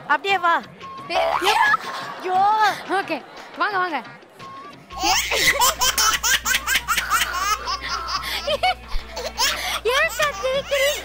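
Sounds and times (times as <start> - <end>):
background music: 0.0 - 11.0
high-pitched laughter: 1.1 - 2.8, 5.0 - 11.0.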